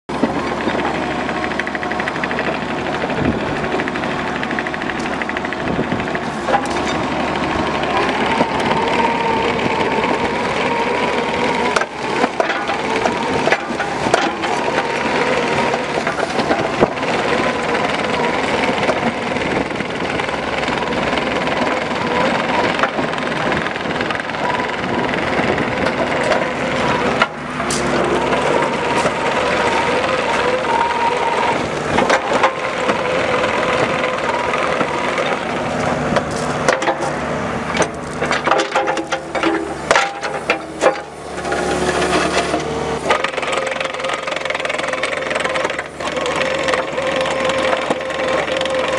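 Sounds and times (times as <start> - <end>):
diesel engine running: 0.1 - 48.9
steady whine: 0.1 - 48.9.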